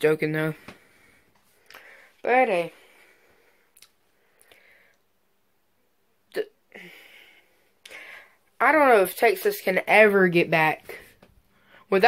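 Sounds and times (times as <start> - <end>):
faint breath: 0.6 - 5.1, 6.8 - 8.4, 11.5 - 11.9.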